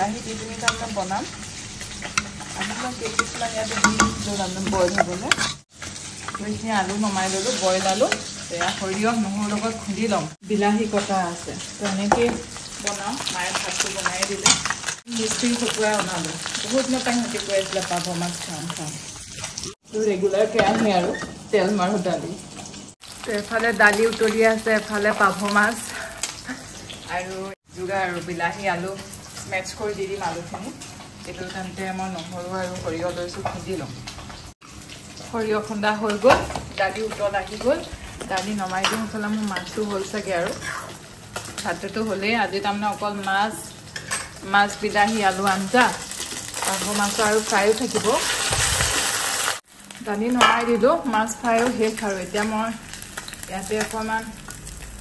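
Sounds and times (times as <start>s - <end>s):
woman talking: 0.0s - 1.3s, 2.5s - 5.5s, 6.3s - 19.0s, 19.9s - 22.4s, 23.3s - 26.1s, 27.1s - 34.0s, 35.3s - 40.6s, 41.6s - 43.7s, 44.4s - 48.3s, 50.0s - 52.8s, 53.5s - 54.4s
fish sizzling in oil: 0.0s - 55.0s
spoon scraping in metal pot: 2.0s - 6.4s.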